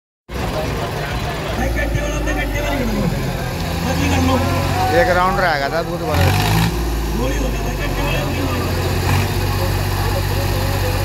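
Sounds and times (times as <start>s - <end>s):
crowd talking: 0.3s - 11.0s
diesel engines humming: 0.3s - 11.0s.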